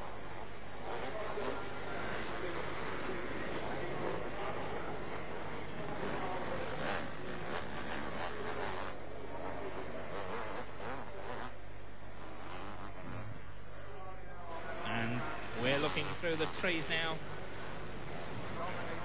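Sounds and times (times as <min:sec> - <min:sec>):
motocross bike engines revving: 0:00.0 - 0:13.8, 0:14.6 - 0:19.0.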